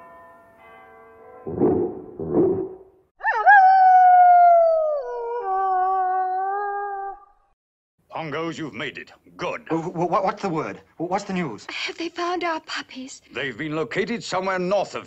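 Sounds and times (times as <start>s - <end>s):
dog howling: 3.2s - 7.5s.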